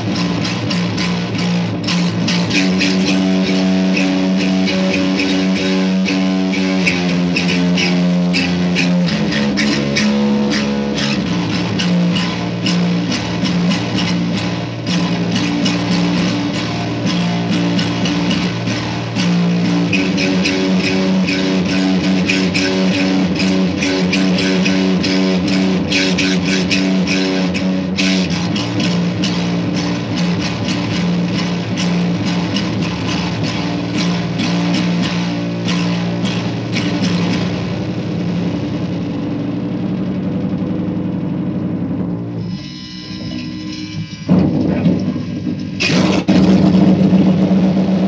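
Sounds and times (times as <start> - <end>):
electric bass guitar riff: 0.0 - 48.0.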